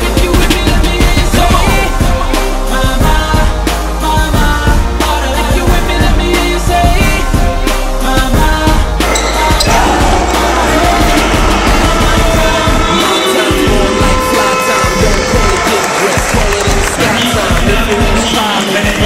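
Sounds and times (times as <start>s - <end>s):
music: 0.0s - 19.0s
crowd in gym: 9.0s - 19.0s.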